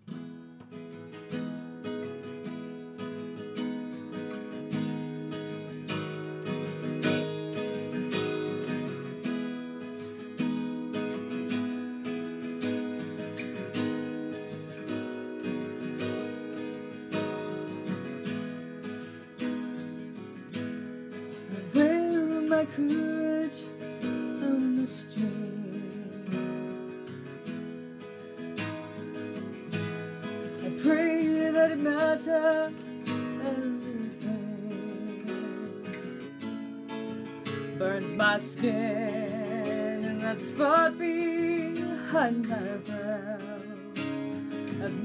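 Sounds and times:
acoustic guitar strumming chords: 0.0s - 45.0s.

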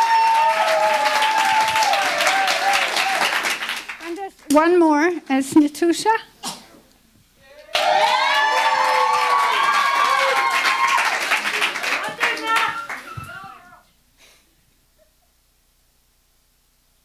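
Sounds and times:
audience clapping and cheering: 0.0s - 4.3s, 7.6s - 13.8s.

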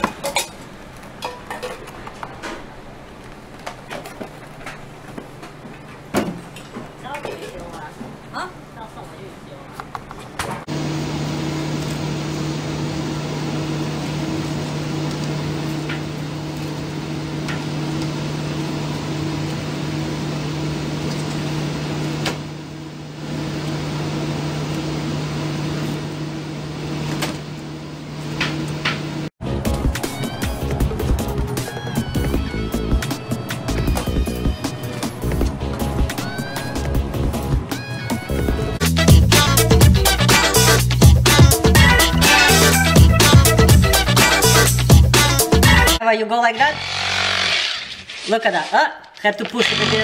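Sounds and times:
mechanical hum: 0.0s - 50.0s
background music: 29.4s - 46.0s.

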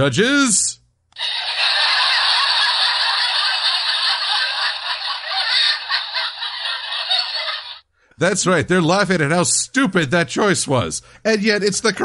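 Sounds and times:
studio audience laughing: 1.2s - 7.9s.

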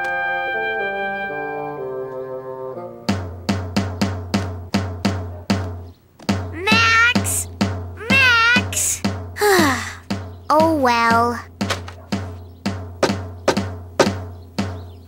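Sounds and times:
drum strikes: 3.1s - 9.4s, 10.0s - 14.8s.

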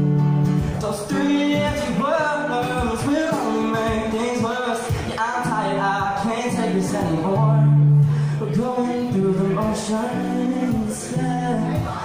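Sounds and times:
acoustic guitar: 0.0s - 12.0s
man singing: 0.6s - 12.0s.

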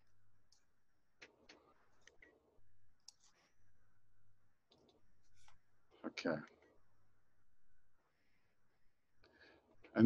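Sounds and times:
soft clicks: 3.0s - 3.4s.

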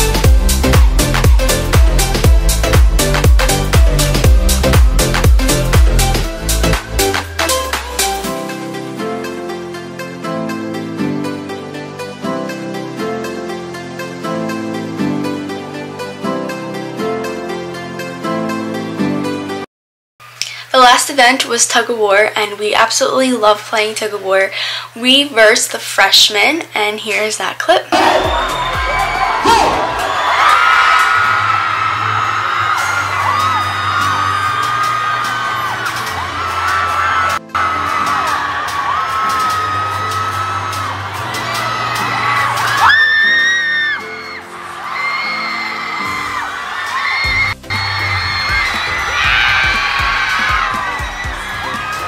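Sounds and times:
music with steady bass line: 0.0s - 13.3s, 28.0s - 30.3s, 47.3s - 52.0s
crowd cheering and screaming: 28.0s - 52.0s.

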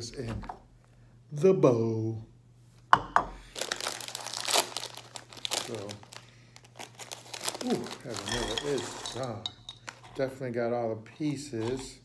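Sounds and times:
plastic snack bag crinkling: 3.5s - 10.0s.

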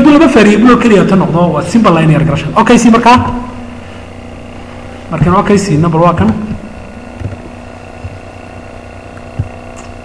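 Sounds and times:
steady background hum: 0.0s - 10.0s
faint low thumps: 6.2s - 8.3s.

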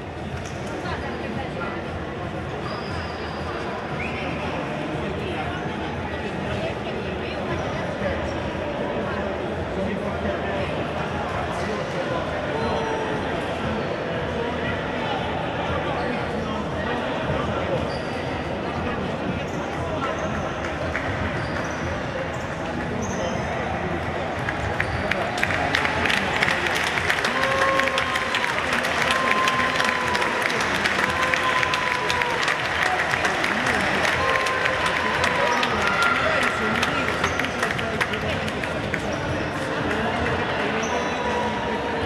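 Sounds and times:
crowd voices: 0.0s - 42.0s
crowd clapping and cheering: 20.6s - 21.7s, 24.0s - 41.9s.

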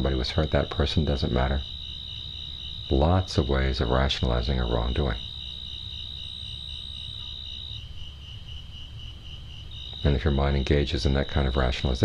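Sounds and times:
cricket high trill: 0.0s - 12.0s
pulsing cricket chirp: 0.0s - 12.0s.

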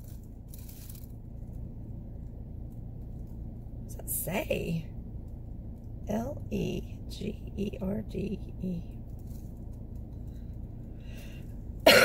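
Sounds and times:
low hum inside a car: 0.0s - 12.0s.

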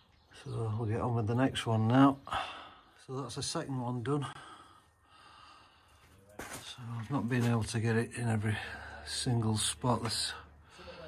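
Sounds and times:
man speaking: 3.0s - 4.4s, 6.2s - 11.0s
man breathing in: 4.3s - 6.2s.

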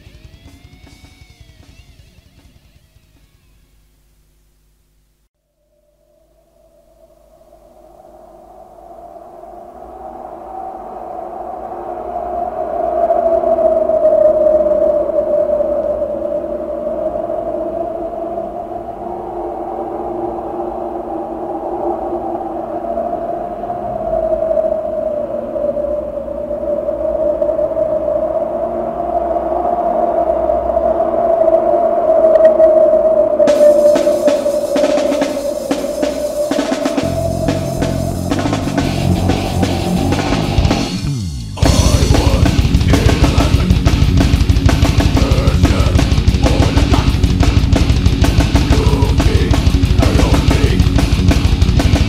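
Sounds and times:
drum kit: 0.0s - 3.5s, 33.5s - 52.0s
droning ambient tone: 0.0s - 52.0s.

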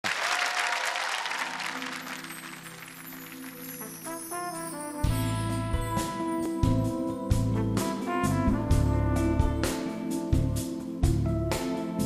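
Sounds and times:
audience applause: 0.0s - 4.4s.

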